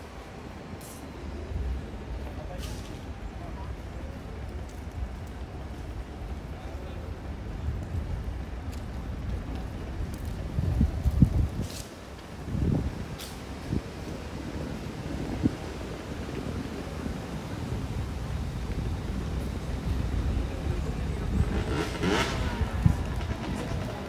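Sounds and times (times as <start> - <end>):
road traffic rumble: 0.0 - 24.0
wind buffeting microphone: 3.0 - 24.0.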